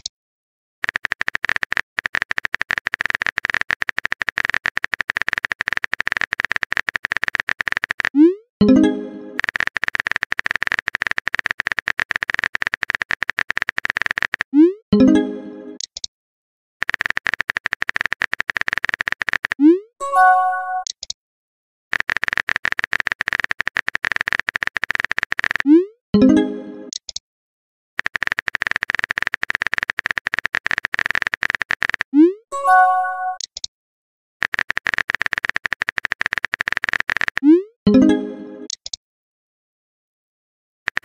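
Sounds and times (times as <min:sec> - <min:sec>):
fast keyboard typing clicks: 0:00.8 - 0:14.6, 0:16.8 - 0:19.7, 0:21.9 - 0:25.8, 0:28.0 - 0:32.2, 0:34.4 - 0:37.6.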